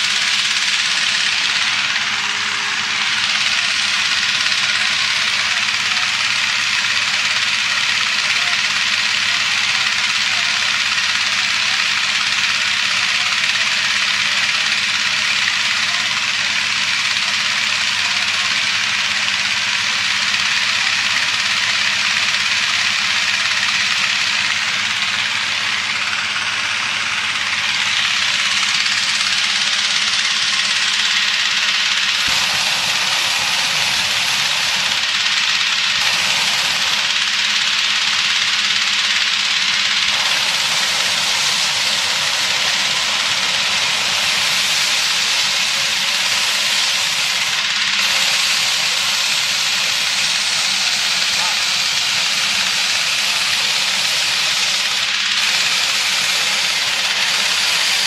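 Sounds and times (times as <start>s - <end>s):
petrol engine fan running: 0.0s - 58.0s.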